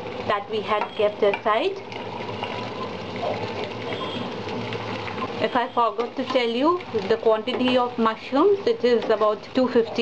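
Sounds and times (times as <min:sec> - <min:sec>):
food sizzling in a frying pan: 0:00.0 - 0:10.0.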